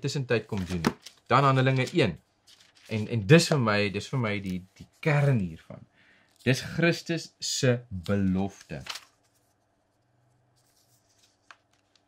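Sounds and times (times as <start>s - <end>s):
thin pages rustling: 0.4s - 5.6s, 8.0s - 12.0s.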